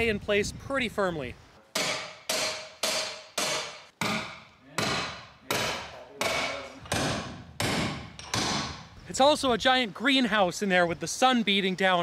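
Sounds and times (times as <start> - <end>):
hammer striking steel stake: 1.7 - 8.9.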